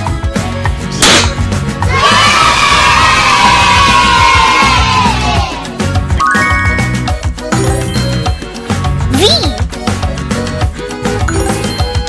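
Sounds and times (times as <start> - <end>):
confetti cannon pop: 1.0 - 1.4
children cheering: 1.8 - 5.7
upbeat music: 3.3 - 12.0.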